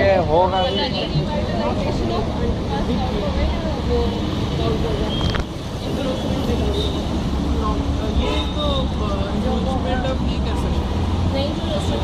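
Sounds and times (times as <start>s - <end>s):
low street noise: 0.0s - 12.0s
people talking: 0.0s - 12.0s.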